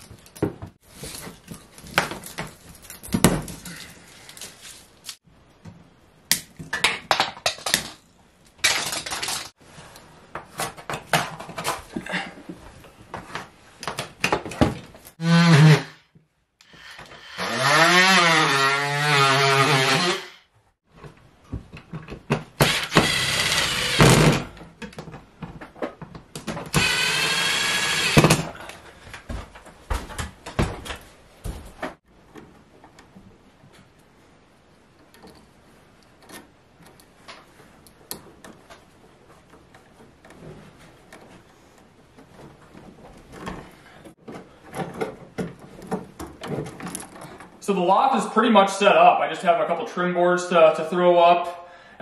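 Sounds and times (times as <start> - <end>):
power drill driving screws: 22.6 - 24.4, 26.7 - 28.5
wires and tools rattling: 44.1 - 47.6.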